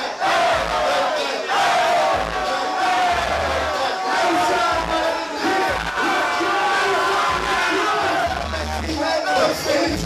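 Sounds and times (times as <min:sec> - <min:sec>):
crowd shouting along: 0:00.0 - 0:10.0
person rapping through microphone: 0:02.0 - 0:10.0.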